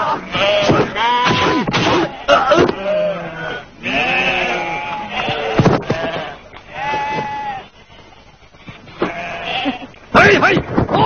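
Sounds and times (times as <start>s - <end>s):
sheep bleating: 0.0s - 7.7s, 9.0s - 10.0s.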